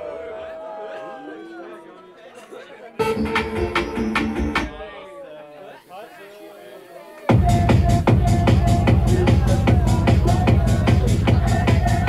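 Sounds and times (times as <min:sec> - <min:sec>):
music: 0:03.0 - 0:04.9, 0:07.3 - 0:12.0.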